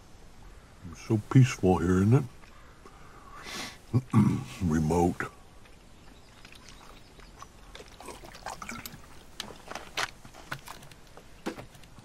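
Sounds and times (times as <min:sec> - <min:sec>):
man gulping from bottle: 0:06.4 - 0:09.8.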